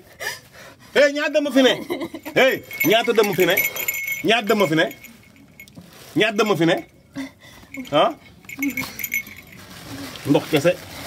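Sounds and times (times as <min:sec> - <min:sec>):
metallic jingling and clinking: 0:01.7 - 0:10.7.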